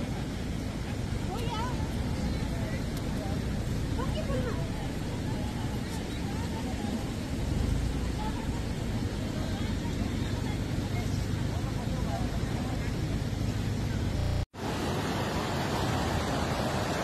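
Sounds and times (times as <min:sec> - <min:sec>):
river rushing in flood: 0:00.0 - 0:14.0, 0:14.6 - 0:17.0
people talking: 0:00.0 - 0:14.4.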